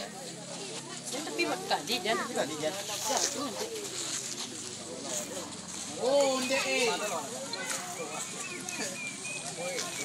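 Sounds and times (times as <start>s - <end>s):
onlookers calling and chattering: 0.0s - 10.0s.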